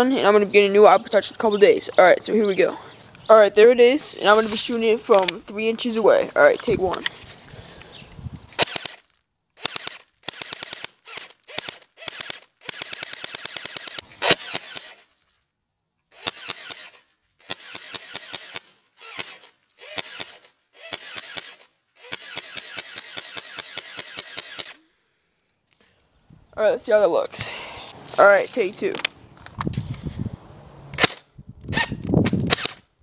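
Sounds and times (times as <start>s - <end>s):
pellets shattering glass screen: 4.2s - 4.9s
airsoft gun firing bursts: 8.6s - 9.0s, 9.6s - 15.0s, 16.1s - 24.8s, 31.8s - 32.9s.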